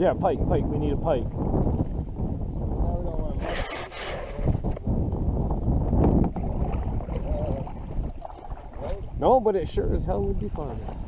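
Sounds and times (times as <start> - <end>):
wind buffeting microphone: 0.0 - 11.0
water lapping against kayak hull: 1.2 - 4.9, 5.8 - 11.0
water splashing: 6.3 - 11.0.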